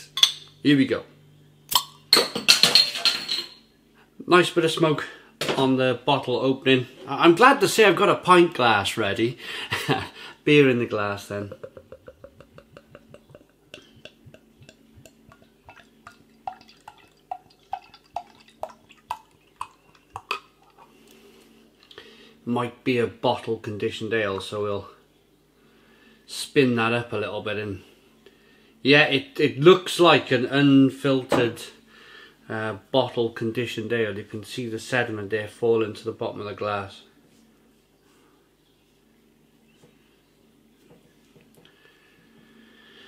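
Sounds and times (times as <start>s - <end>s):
beer glugging from glass bottle: 11.3s - 20.9s.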